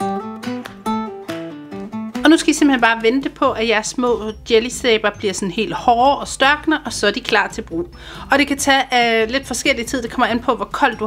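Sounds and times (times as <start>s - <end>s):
guitar melody: 0.0s - 8.2s.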